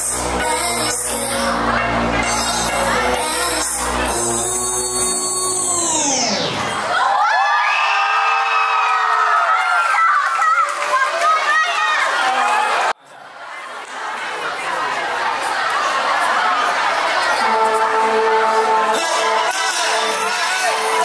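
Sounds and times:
dance track over loudspeakers: 0.0s - 7.1s, 17.1s - 21.0s
audience cheering and screaming: 5.5s - 12.9s.

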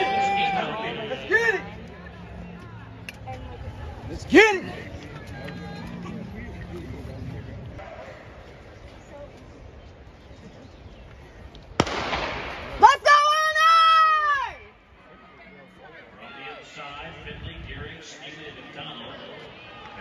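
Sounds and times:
crowd cheering: 0.0s - 6.4s, 18.5s - 20.0s
spectator yelling: 12.8s - 14.6s.

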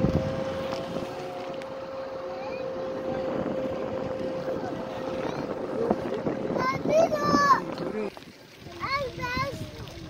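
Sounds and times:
steady high hum: 0.0s - 8.2s
wind buffeting microphone: 0.0s - 10.0s.

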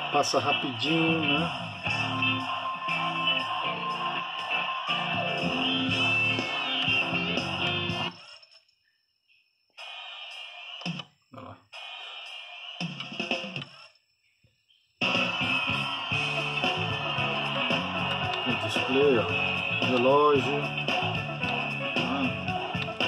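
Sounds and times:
music from speakers: 0.0s - 8.2s, 15.0s - 23.0s.

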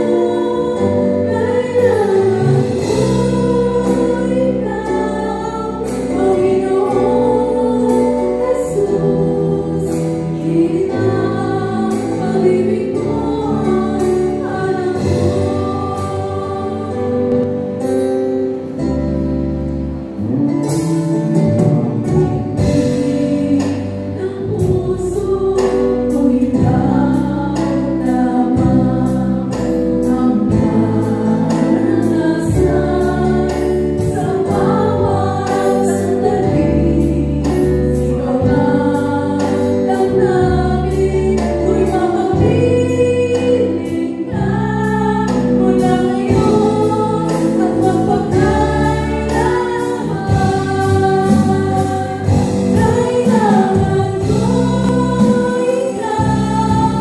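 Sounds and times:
acoustic guitar: 0.0s - 57.0s
electric bass: 0.0s - 57.0s
keyboard: 0.0s - 57.0s.

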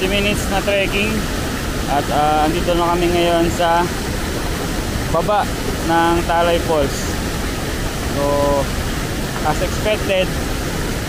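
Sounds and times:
waterfall rushing over rock: 0.0s - 11.0s.

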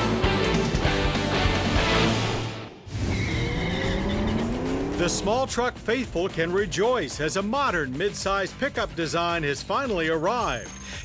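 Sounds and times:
car engine revving: 1.9s - 6.6s
tyre squeal: 3.0s - 4.6s.

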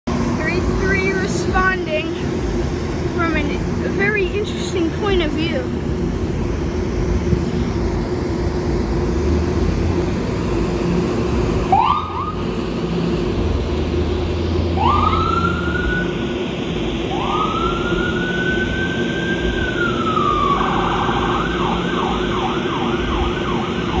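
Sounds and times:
engine rumble and hum: 0.0s - 24.0s
ambulance siren: 11.6s - 12.5s, 14.7s - 24.0s.

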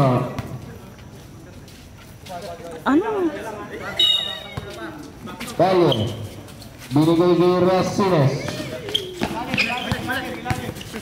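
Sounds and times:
basketball bouncing on hard court: 8.4s - 11.0s.

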